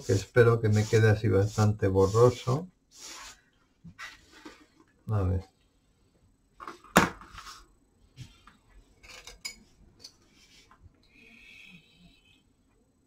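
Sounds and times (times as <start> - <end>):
paintbrush swishing in water jar: 0.0 - 4.7.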